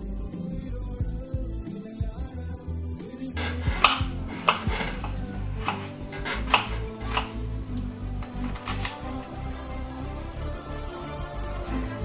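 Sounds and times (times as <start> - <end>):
background music: 0.0 - 12.0
knife chopping on wooden board: 3.4 - 7.4.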